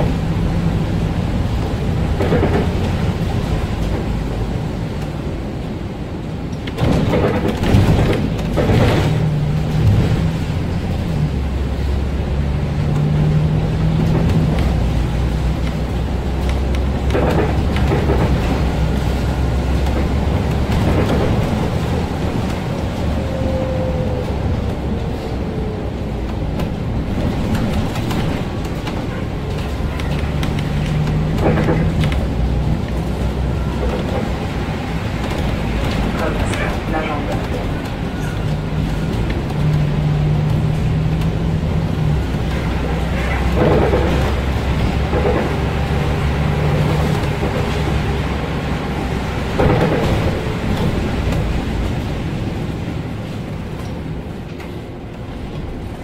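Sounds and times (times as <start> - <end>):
bus engine droning: 0.0 - 56.0
tyre noise on wet road: 0.0 - 56.0
body knocks and rattles: 6.6 - 11.1.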